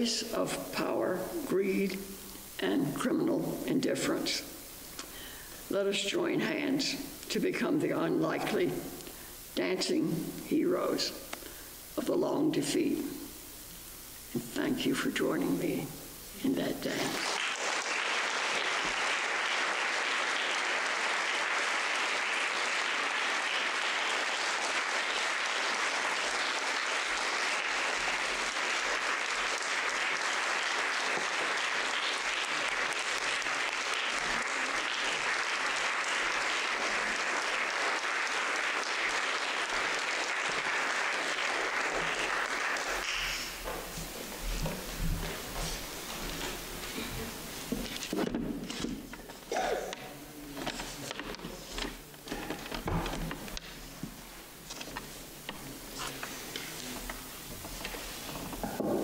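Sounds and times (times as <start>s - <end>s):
room noise: 0.0s - 59.0s
audience applauding: 17.1s - 43.8s.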